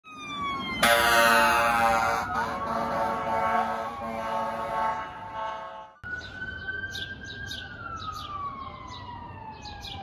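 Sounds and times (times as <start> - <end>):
multi-tone horn blast: 0.8 - 6.0.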